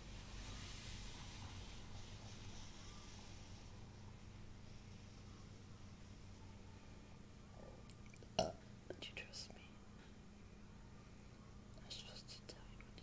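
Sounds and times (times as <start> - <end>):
low steady hum: 0.0 - 13.0
woman whispering: 8.9 - 9.8, 11.8 - 13.0.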